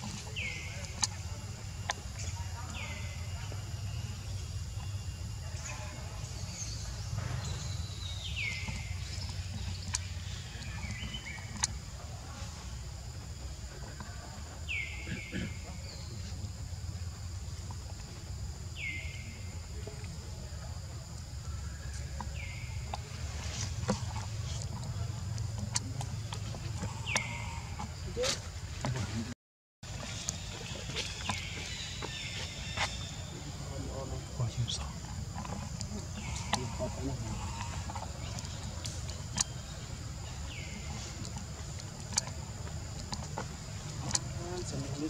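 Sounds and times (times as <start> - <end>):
insects droning: 0.0 - 45.0.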